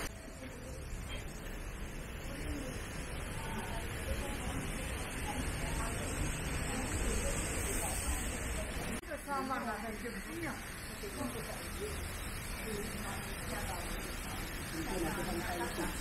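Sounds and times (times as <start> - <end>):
people talking: 0.0 - 16.0
steady outdoor hiss: 0.0 - 16.0.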